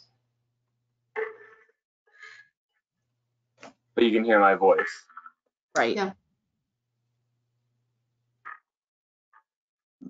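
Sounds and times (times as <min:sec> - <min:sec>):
person speaking: 0:04.0 - 0:05.0.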